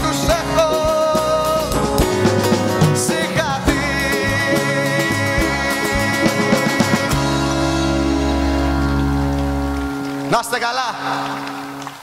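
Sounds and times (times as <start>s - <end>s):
acoustic guitar chord ringing: 3.8s - 11.9s
low bass note: 7.0s - 10.3s.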